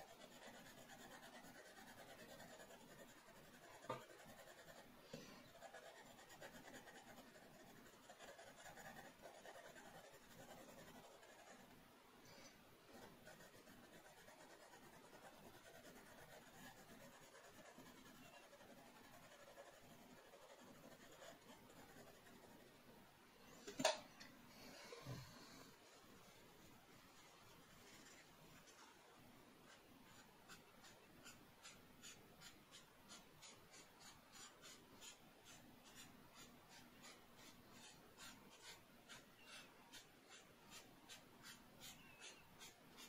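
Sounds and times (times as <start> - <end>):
pencil scratching on paper: 0.0 - 11.7, 12.9 - 22.7, 29.6 - 43.0.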